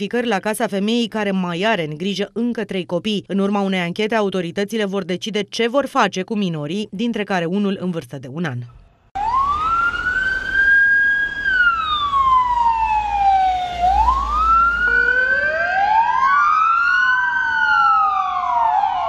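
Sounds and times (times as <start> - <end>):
emergency sirens wailing: 9.2 - 19.0.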